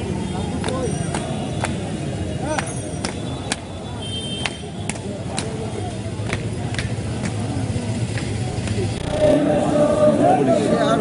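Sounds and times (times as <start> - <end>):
crowd noise: 0.0 - 11.0
people slapping chests in unison: 0.5 - 3.7, 4.4 - 9.0.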